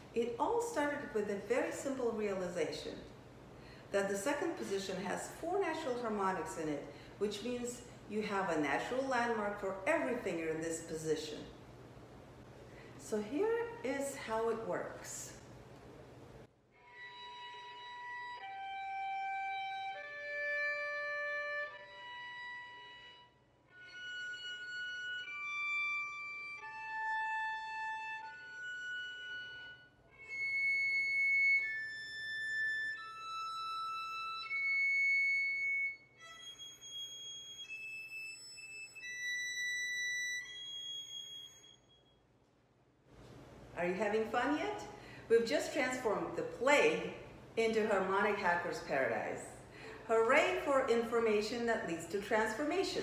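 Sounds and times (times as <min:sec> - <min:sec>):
violin harmonics: 0:16.8 - 0:42.2.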